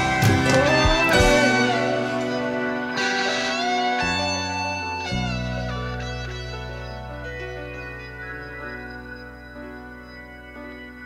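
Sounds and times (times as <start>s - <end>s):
electric guitar lead notes: 0.0s - 11.0s.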